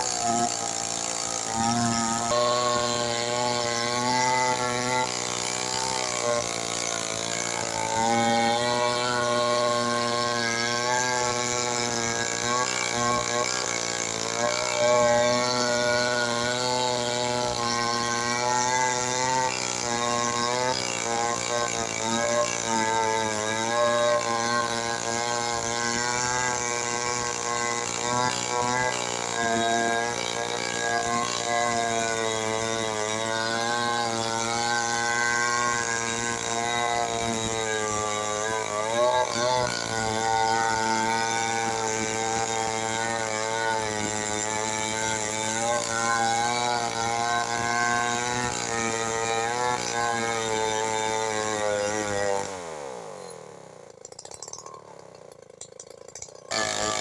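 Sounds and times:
chainsaw cutting log: 0:00.0 - 0:57.0.

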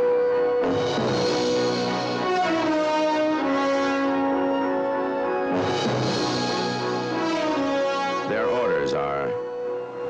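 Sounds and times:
orchestral music: 0:00.0 - 0:10.0.

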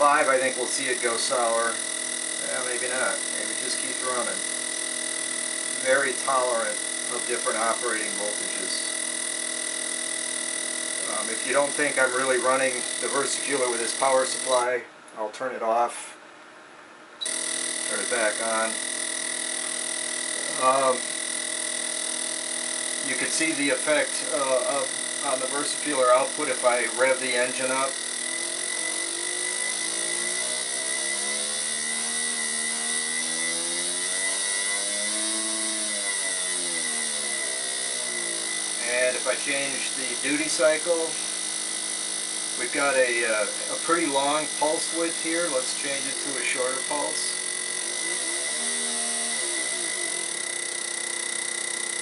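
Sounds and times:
fuel injector buzzing: 0:00.0 - 0:14.8, 0:17.2 - 0:52.0
thin high whine: 0:00.0 - 0:14.9, 0:17.2 - 0:52.0.

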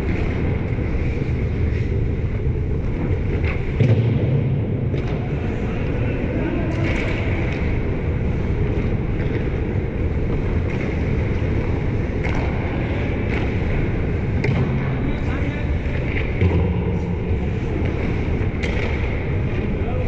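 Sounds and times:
low rumble of ice arena: 0:00.0 - 0:20.0.

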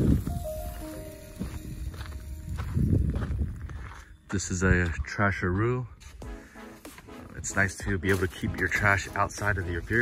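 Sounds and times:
footsteps on gravelly ground: 0:00.0 - 0:10.0.

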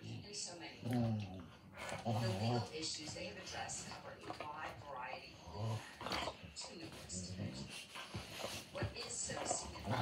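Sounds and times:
dogs grumbling: 0:00.0 - 0:03.0, 0:04.2 - 0:10.0.

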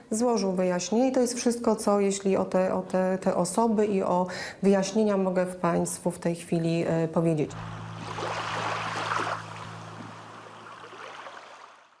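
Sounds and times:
steady low hum: 0:07.1 - 0:11.3
sea washing on shore: 0:07.6 - 0:12.0.

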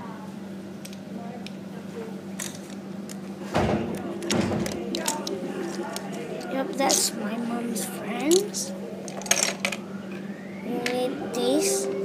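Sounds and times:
steady low hum: 0:00.0 - 0:12.0
people talking: 0:03.6 - 0:09.1, 0:10.6 - 0:12.0
plastic lego clicks: 0:04.2 - 0:06.2.

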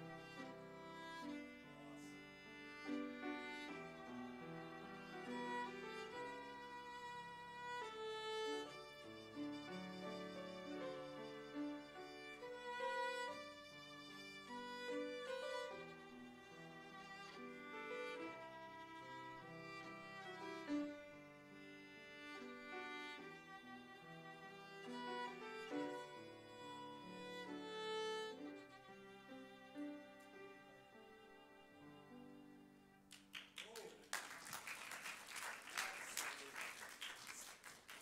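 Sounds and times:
solo violin slow melody: 0:00.0 - 0:33.1.

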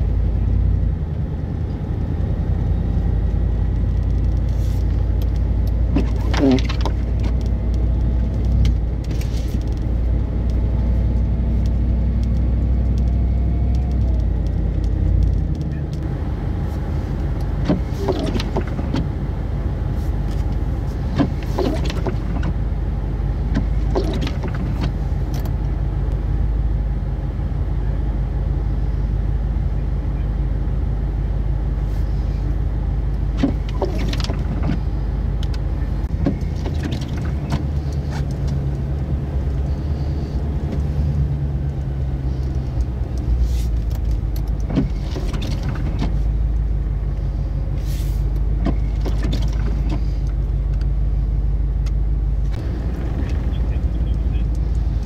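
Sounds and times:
car engine rumble inside cabin: 0:00.0 - 0:55.0.

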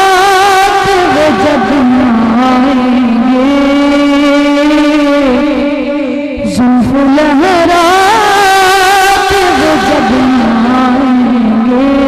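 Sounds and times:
boy singing through loudspeakers: 0:00.0 - 0:12.0.

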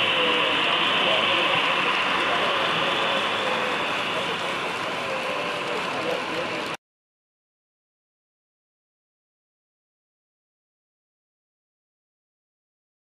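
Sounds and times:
faint crowd chatter: 0:00.0 - 0:06.8
model train wheels rolling on track: 0:00.0 - 0:06.8.

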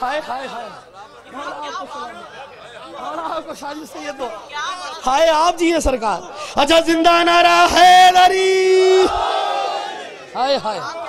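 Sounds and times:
crowd calling out together: 0:08.1 - 0:11.0.

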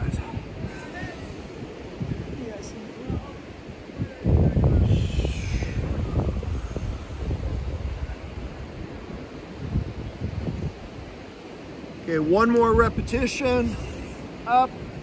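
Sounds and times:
surf: 0:00.0 - 0:15.0
wind buffeting microphone: 0:00.0 - 0:15.0.

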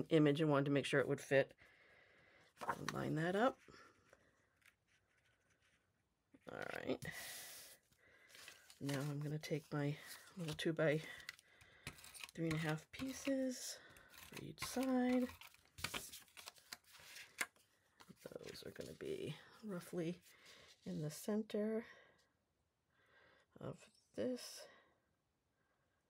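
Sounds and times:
cardstock rustling: 0:08.3 - 0:19.1.

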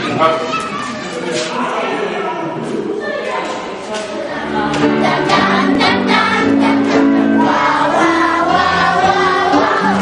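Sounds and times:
choir singing in parts: 0:04.3 - 0:10.0.

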